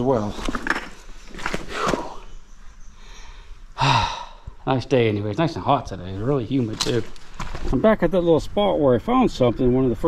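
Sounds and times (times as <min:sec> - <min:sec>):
man sighing: 0:03.2 - 0:04.6.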